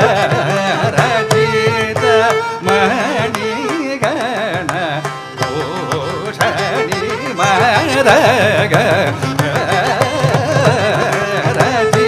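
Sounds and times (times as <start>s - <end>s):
mridangam drum strokes: 0.0s - 12.0s
person singing ornamented melody: 0.0s - 12.0s.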